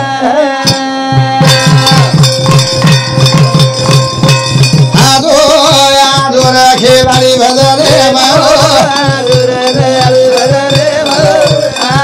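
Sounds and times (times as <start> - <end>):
person singing: 0.0 - 2.4, 4.9 - 12.0
drum beat: 0.6 - 12.0
held instrument notes: 0.6 - 12.0
jingling percussion: 0.6 - 12.0.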